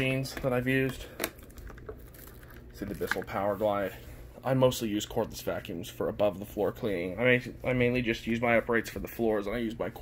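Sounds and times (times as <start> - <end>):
man talking: 0.0 - 1.2, 2.7 - 10.0.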